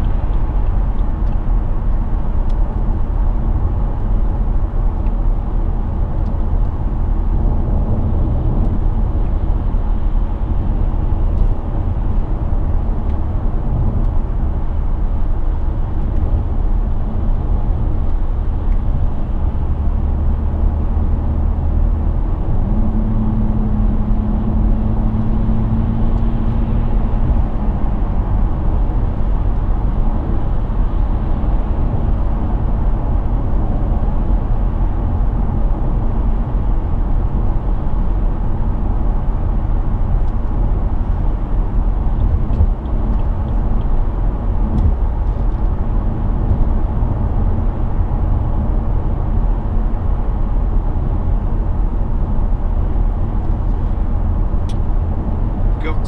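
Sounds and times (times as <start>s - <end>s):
low diesel engine hum: 0.0s - 56.0s
road and tyre roar: 0.0s - 56.0s.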